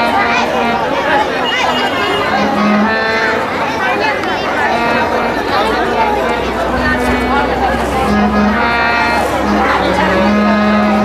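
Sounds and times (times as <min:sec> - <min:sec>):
low drawn-out voiced sound: 0:00.0 - 0:11.0
voices through loudspeaker: 0:00.0 - 0:11.0.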